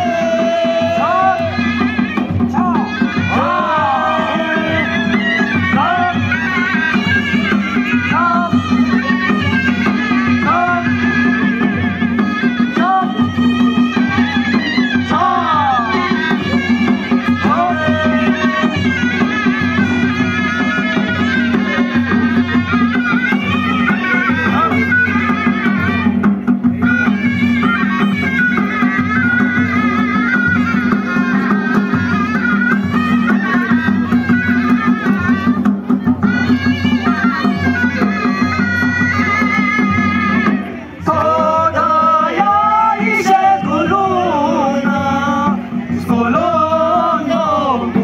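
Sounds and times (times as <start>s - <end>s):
men singing: 0.0s - 6.9s, 12.6s - 22.1s, 41.0s - 48.0s
drum beats: 0.0s - 48.0s
reedy shawm melody: 0.0s - 48.0s.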